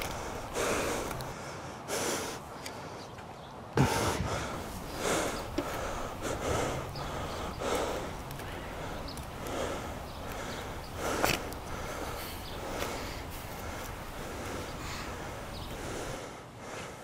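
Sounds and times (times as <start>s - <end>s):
hard winded breathing: 0.0s - 3.2s, 3.8s - 17.0s.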